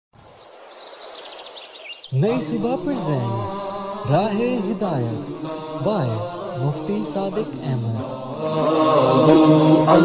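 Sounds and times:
birds chirping: 0.2 - 7.8.

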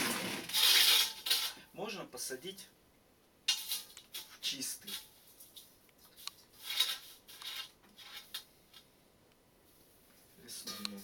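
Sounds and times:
dry moss rustling in metal bowl: 3.5 - 8.4.

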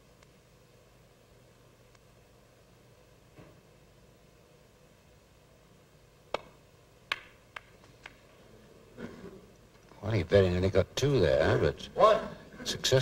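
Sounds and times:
snooker balls clicking together: 6.3 - 8.2.

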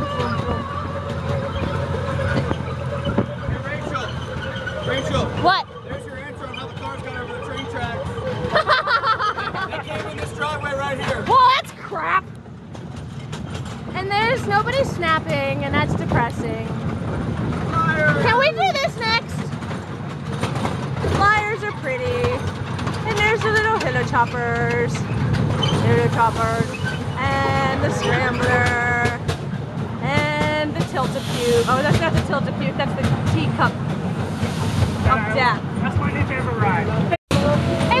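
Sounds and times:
voices talking: 0.0 - 12.4, 13.9 - 16.9, 17.5 - 19.7, 21.0 - 29.4, 30.0 - 33.9, 35.0 - 38.0
ride train rumbling and rattling: 0.0 - 38.0.

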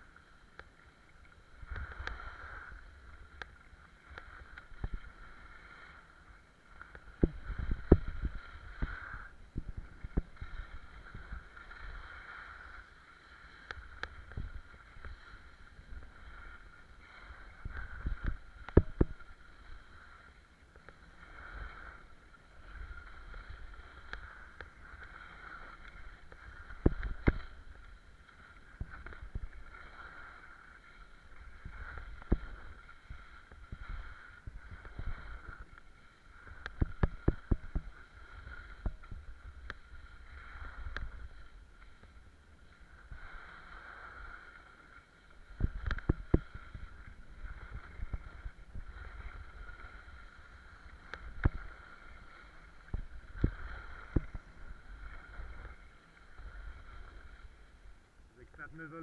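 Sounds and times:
skis scraping over snow: 8.5 - 9.3, 10.5 - 13.6.

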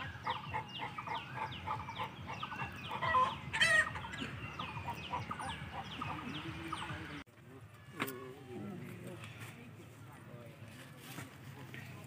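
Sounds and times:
chickens calling: 0.0 - 7.2.

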